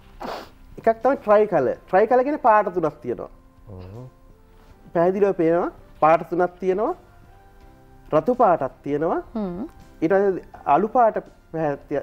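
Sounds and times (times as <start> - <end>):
breathy hiss near microphone: 0.0 - 1.4, 2.3 - 12.0
person speaking: 0.8 - 4.2.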